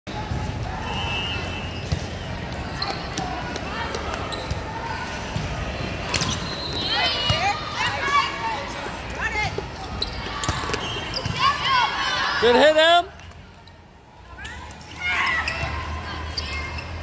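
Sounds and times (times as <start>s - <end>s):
voices of players and spectators: 0.1s - 17.0s.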